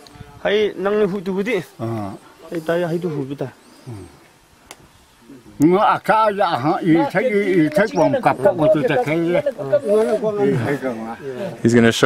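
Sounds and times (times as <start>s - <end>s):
elderly man talking loudly: 5.3s - 12.0s.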